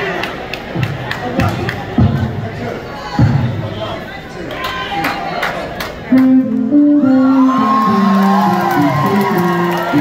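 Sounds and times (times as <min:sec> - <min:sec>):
crowd whooping and cheering: 0:06.9 - 0:10.0.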